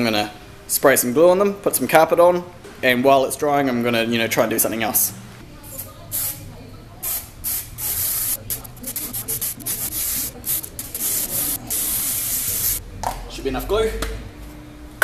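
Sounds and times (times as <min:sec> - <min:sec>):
aerosol can hissing: 0:07.0 - 0:12.8.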